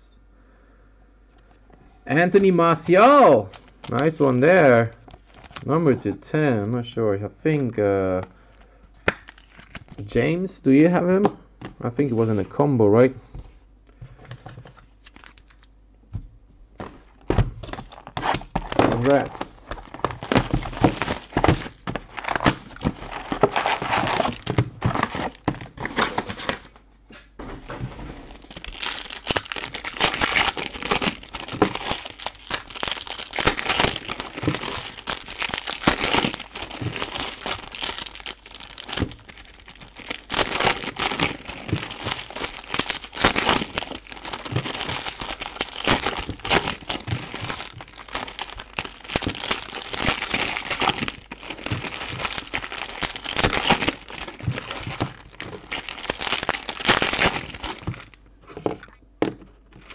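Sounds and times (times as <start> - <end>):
foil wrappers tearing and crinkling: 2.7 - 5.7, 8.4 - 10.1, 14.9 - 15.7, 17.6 - 26.7, 28.2 - 58.2.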